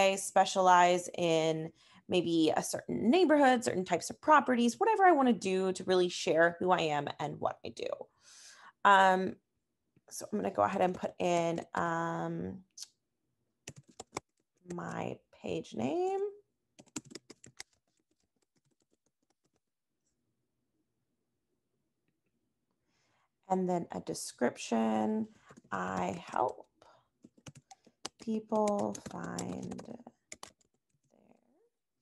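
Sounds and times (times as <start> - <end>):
typing on computer keyboard: 13.7 - 14.3, 16.8 - 19.6, 27.2 - 30.9.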